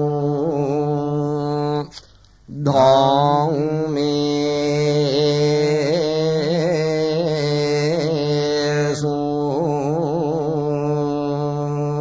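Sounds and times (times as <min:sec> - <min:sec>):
man chanting held notes: 0:00.0 - 0:12.0.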